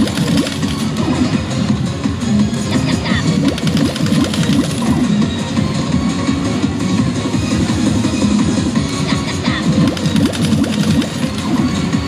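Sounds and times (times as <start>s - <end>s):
slot machine reel clicks: 0.0s - 1.0s, 3.3s - 5.1s, 9.7s - 11.8s
loud electronic slot machine music: 0.0s - 12.0s.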